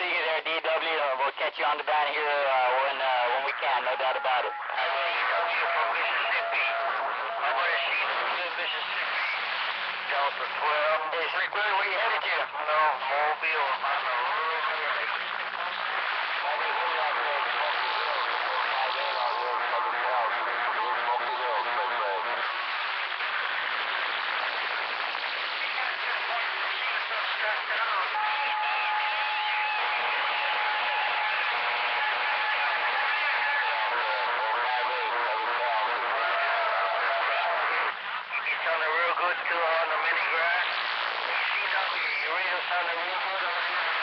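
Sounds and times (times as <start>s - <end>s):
radio static: 0.0s - 44.0s
radio voices talking over each other: 0.0s - 44.0s.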